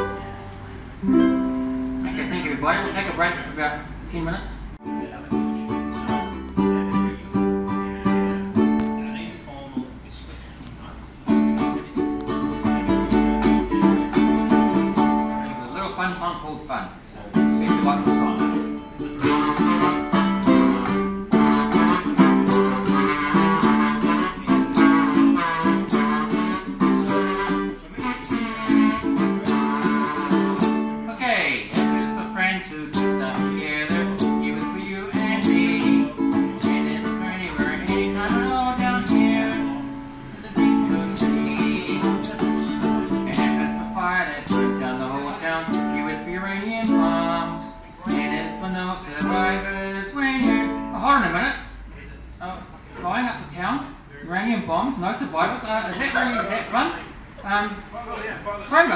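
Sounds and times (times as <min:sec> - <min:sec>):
ukulele strumming chords: 0:00.0 - 0:03.2, 0:04.8 - 0:09.6, 0:11.1 - 0:15.9, 0:17.3 - 0:51.3
wavering melody line: 0:17.9 - 0:31.1.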